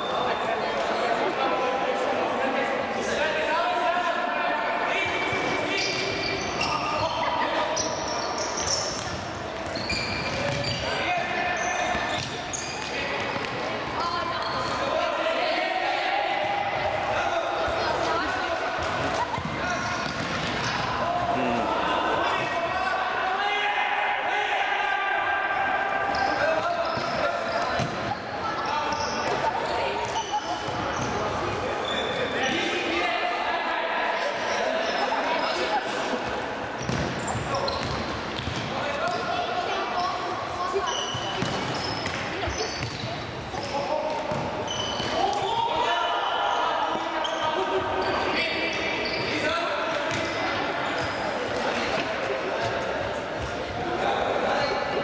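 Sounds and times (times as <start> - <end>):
ball kicked and bouncing: 9.0 - 10.7
players shouting in a hall: 13.9 - 20.0, 20.6 - 37.8, 43.7 - 55.0.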